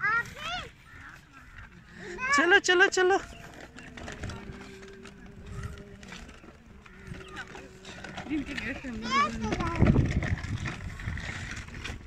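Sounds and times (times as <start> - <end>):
tricycle rolling over gravel: 0.0 - 12.0.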